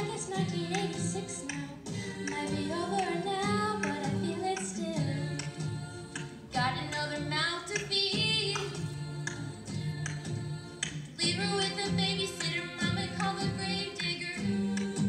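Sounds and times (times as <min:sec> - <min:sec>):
choir singing pop song: 0:00.0 - 0:15.0.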